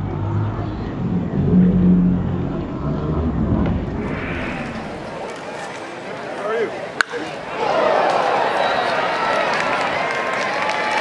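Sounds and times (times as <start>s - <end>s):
slowed crowd noise rumble: 0.0s - 11.0s.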